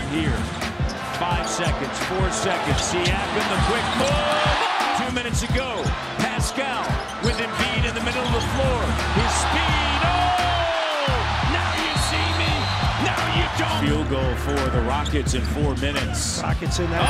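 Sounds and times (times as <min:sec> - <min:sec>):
arena crowd noise: 0:00.0 - 0:17.0
sneakers squeaking: 0:06.8 - 0:08.8.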